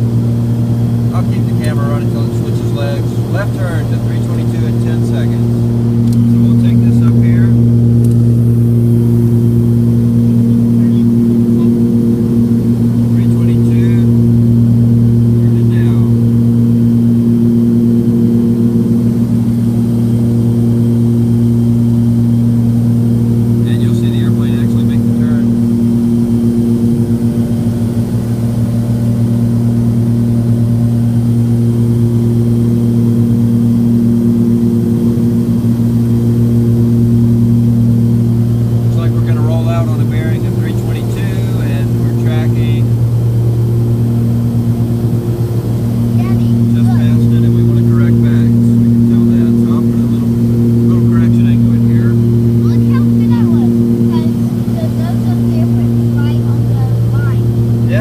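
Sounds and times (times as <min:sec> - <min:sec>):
aircraft engines droning in cabin: 0:00.0 - 0:58.0.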